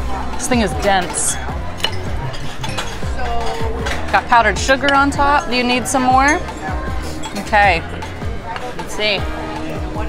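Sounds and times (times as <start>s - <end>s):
background music with held notes: 0.0s - 10.0s
knife and fork clinking on plate: 1.8s - 4.2s.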